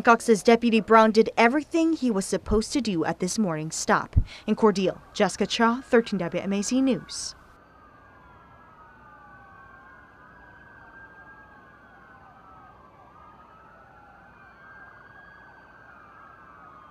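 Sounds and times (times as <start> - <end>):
police sirens wailing: 0.0 - 3.6, 4.6 - 16.9.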